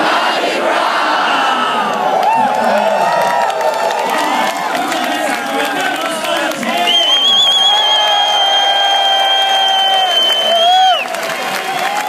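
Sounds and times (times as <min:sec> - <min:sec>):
crowd cheering and applause: 0:00.8 - 0:12.0.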